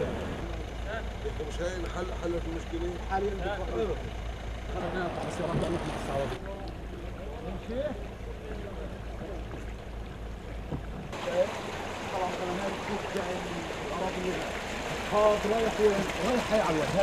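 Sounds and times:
men chattering: 0.5 - 9.7, 11.1 - 17.0
water rushing through culvert: 4.6 - 17.0.

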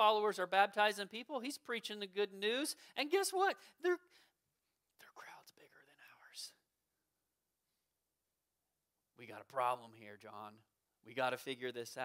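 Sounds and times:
man whispering: 4.8 - 6.7.

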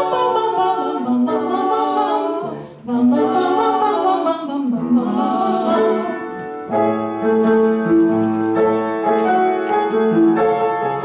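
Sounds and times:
women singing in harmony: 0.0 - 6.6.

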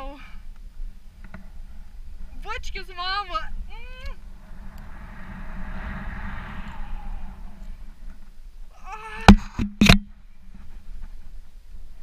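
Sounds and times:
wind on camera microphone: 0.8 - 8.7.

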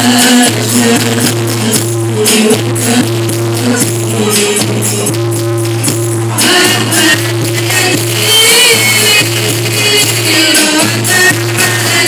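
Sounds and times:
women singing over loudspeaker: 0.0 - 5.2, 6.3 - 12.0
hand percussion: 0.0 - 12.0.

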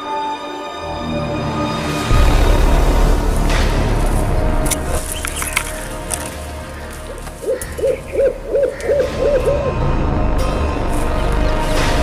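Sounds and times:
owl hooting: 7.4 - 9.8.

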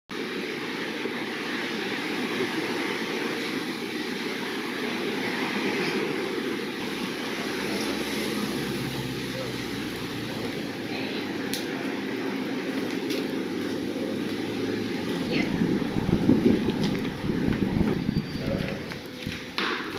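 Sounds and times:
outdoor rushing noise: 0.1 - 19.9.

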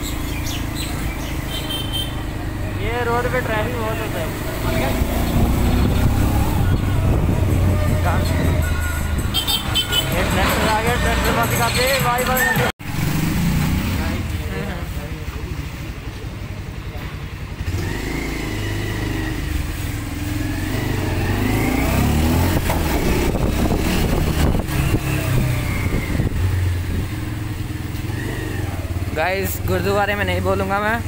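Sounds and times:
motorcycle engine rumbling: 0.0 - 31.0.

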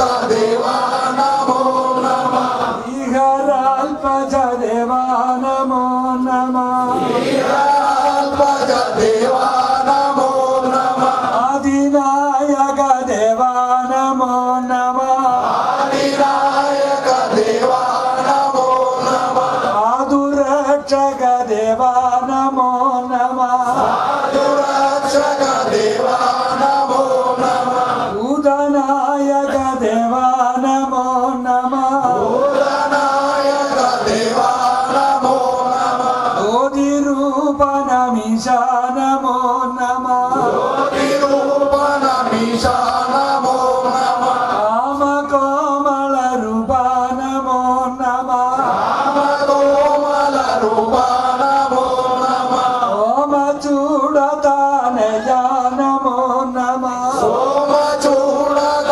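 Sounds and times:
voices chanting devotional song: 0.0 - 58.9.

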